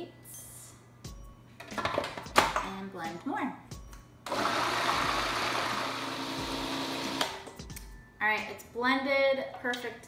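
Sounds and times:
food processor running: 4.3s - 7.3s.

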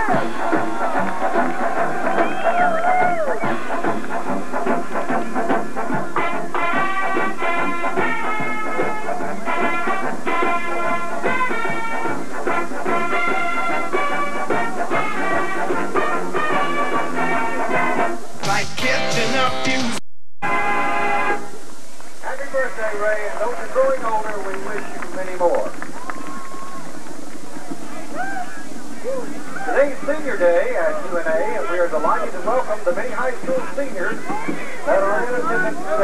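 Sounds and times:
brass and drum marching band: 0.0s - 36.0s.

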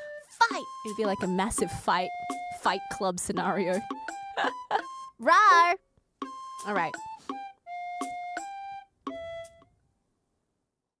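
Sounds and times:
instrumental melody of held notes: 0.0s - 9.8s.

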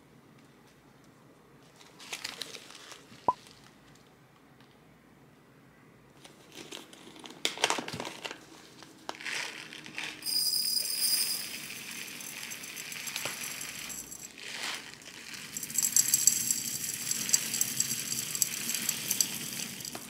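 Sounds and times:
fine grain pouring: 9.2s - 20.0s
kernels pattering against glass: 10.2s - 20.0s.

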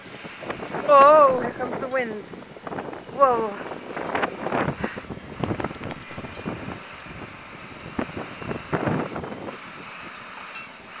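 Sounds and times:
wind gusting on microphone: 0.0s - 11.0s.

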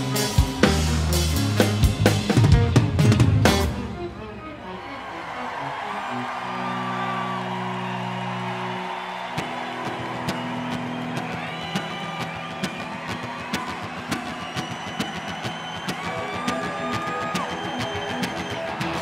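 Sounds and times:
crowd noise: 0.0s - 19.0s.

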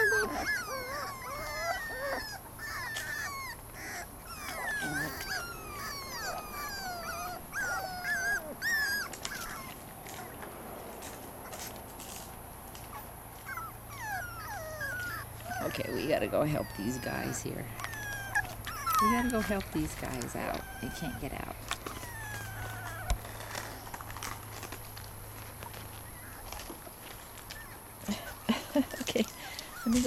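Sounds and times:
puppies whimpering and whining: 0.0s - 30.0s.

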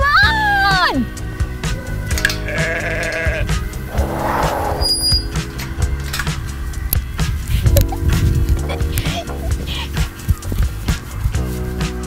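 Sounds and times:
farm animal bleating: 2.4s - 3.5s
brief noisy sound: 3.9s - 5.3s.

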